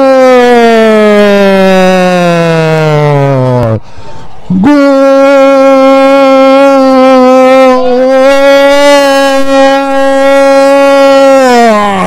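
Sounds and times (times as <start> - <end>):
commentator shouting goal: 4.5 - 12.0.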